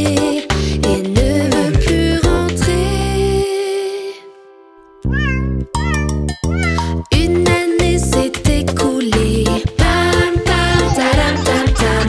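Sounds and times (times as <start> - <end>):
bouncy children's music: 0.0 - 3.7, 5.1 - 12.0
cartoon kitten meowing: 5.0 - 7.0.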